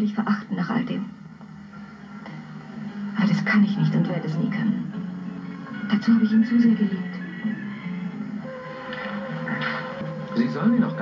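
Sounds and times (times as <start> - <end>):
film score through television speaker: 0.0 - 11.0
steady high tone: 5.8 - 11.0.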